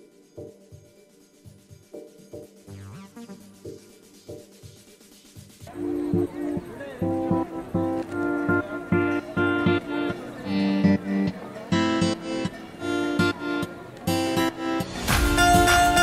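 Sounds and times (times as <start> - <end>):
guitar strumming chords: 5.8 - 16.0.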